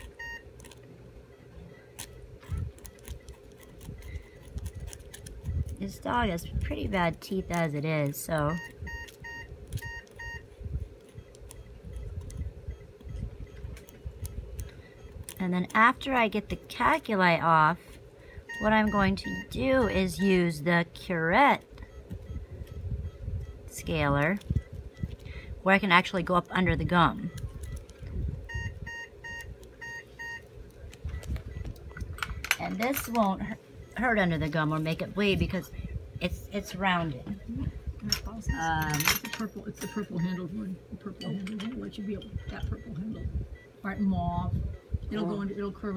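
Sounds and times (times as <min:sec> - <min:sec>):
short electronic beeps: 0:00.0 - 0:00.5, 0:08.5 - 0:10.4, 0:18.5 - 0:20.4, 0:28.5 - 0:30.4, 0:38.4 - 0:45.7
low hum: 0:00.0 - 0:45.9
scaler scraping teeth: 0:01.8 - 0:16.2.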